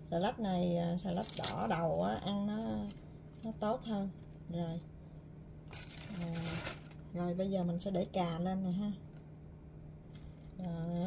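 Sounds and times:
woman talking: 0:00.0 - 0:04.9, 0:06.0 - 0:09.0, 0:10.5 - 0:11.0
steady low hum: 0:00.0 - 0:11.0
soft food handling sounds: 0:05.7 - 0:07.1, 0:10.1 - 0:11.0.

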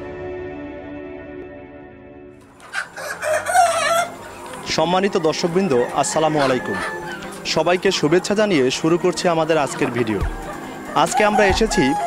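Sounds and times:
chickens clucking: 0:02.4 - 0:12.0
long wavering chicken call: 0:02.6 - 0:07.5, 0:09.5 - 0:12.0.

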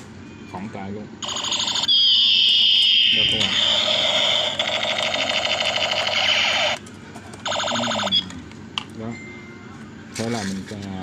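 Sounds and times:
toy gun electronic alarm tone: 0:01.2 - 0:06.8, 0:07.5 - 0:08.3.

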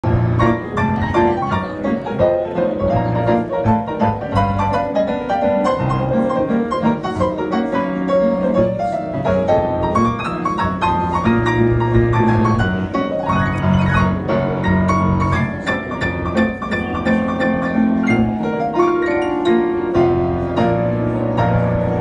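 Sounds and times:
piano played with both hands: 0:00.0 - 0:22.0.

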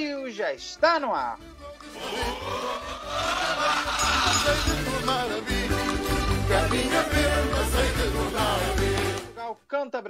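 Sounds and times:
rising noisy jingle sweep: 0:03.8 - 0:05.0
jingle music: 0:03.8 - 0:09.4.

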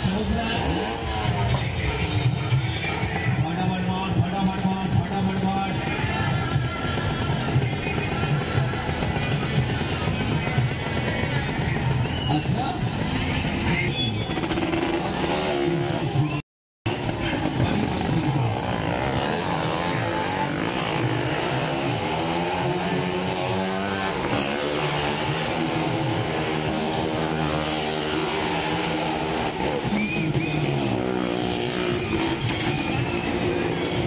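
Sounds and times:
car engines running: 0:00.0 - 0:34.0.

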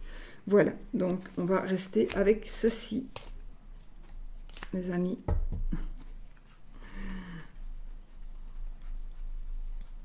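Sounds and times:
cards shuffled in hands: 0:01.0 - 0:03.4, 0:04.0 - 0:04.9.

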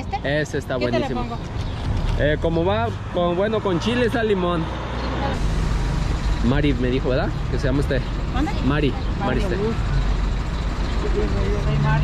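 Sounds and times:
road traffic rumble: 0:00.0 - 0:12.0
heavy vehicle passing: 0:00.9 - 0:12.0.

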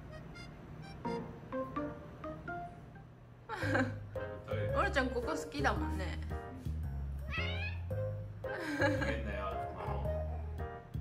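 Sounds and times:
cat meow: 0:07.2 - 0:08.0.

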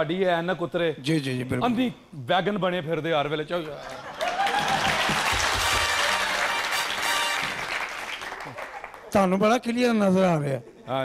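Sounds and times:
audience applauding: 0:03.9 - 0:09.4
music playing: 0:05.4 - 0:07.8.

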